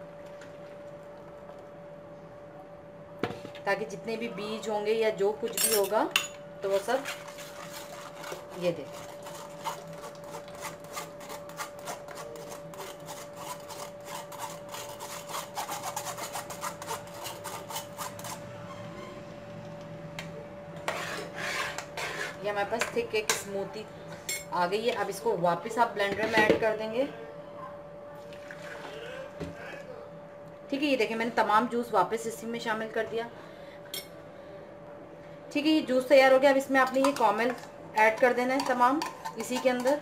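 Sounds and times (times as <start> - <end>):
juice pouring into jug: 28.2 - 29.3.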